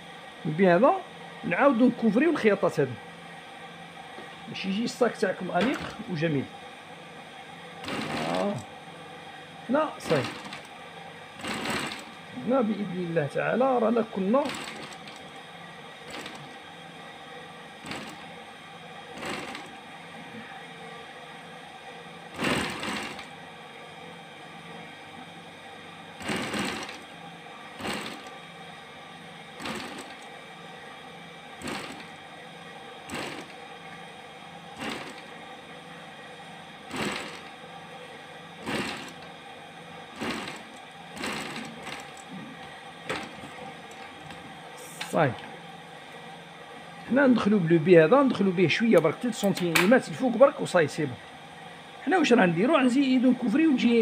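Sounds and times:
steady hum: 0:00.0 - 0:54.0.

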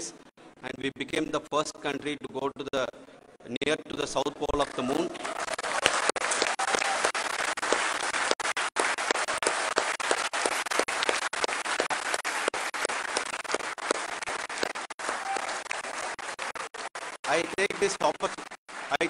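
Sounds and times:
large audience applauding: 0:05.0 - 0:19.0.

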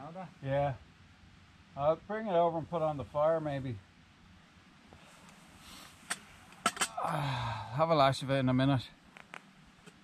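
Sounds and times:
campfire hissing: 0:00.4 - 0:08.4.

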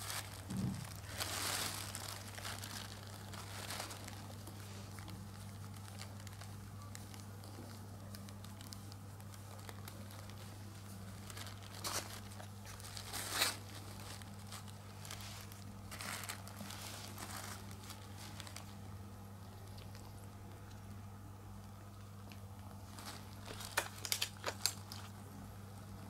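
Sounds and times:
plastic sheet crinkling: 0:00.0 - 0:20.9, 0:21.9 - 0:25.2
steady low hum: 0:00.0 - 0:26.0.

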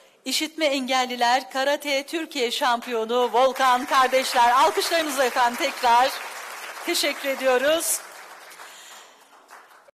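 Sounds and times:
audience applauding: 0:03.4 - 0:10.0.

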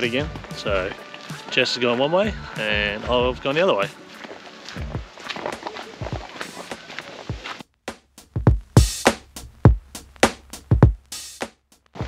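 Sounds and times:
footsteps on dirt path: 0:00.0 - 0:07.6.

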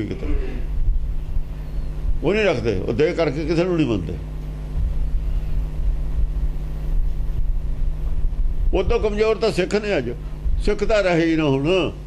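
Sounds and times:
low hum with rumble: 0:00.0 - 0:12.0.

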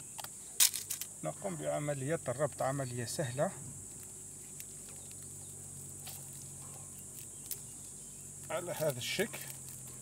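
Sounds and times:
insect chorus trilling: 0:00.0 - 0:10.0.

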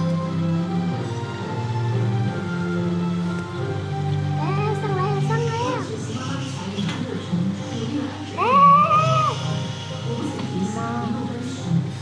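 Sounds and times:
background music: 0:00.0 - 0:12.0
meow-like call: 0:08.4 - 0:09.5.

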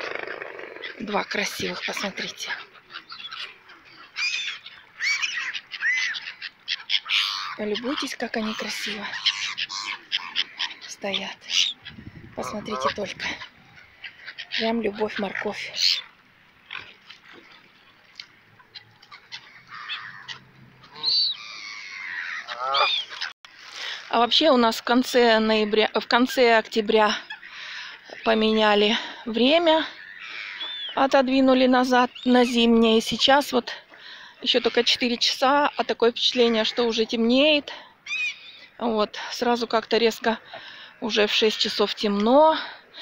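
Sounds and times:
gulls calling: 0:00.0 - 0:43.0.

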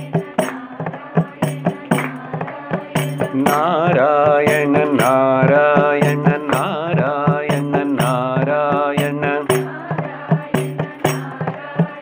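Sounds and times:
man singing devotional chant: 0:00.0 - 0:12.0.

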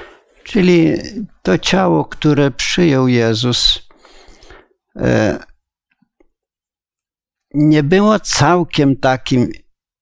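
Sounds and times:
man speaking: 0:00.4 - 0:04.0, 0:05.0 - 0:05.6, 0:07.5 - 0:09.7.

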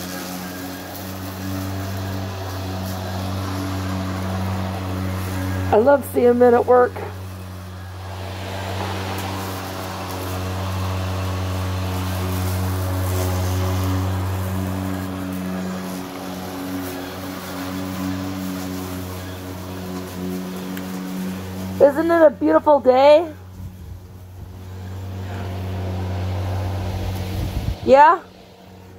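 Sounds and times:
electric lawn mower running: 0:00.0 - 0:28.9.

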